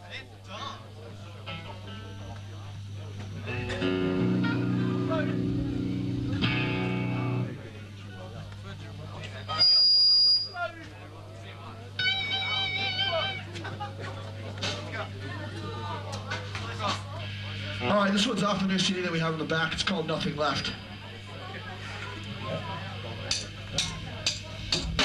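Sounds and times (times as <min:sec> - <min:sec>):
low amplifier hum: 0:00.8 - 0:09.8
electric guitar chord: 0:03.4 - 0:07.6
wavering guitar note: 0:03.4 - 0:07.6
high-pitched feedback squeal: 0:09.5 - 0:10.6.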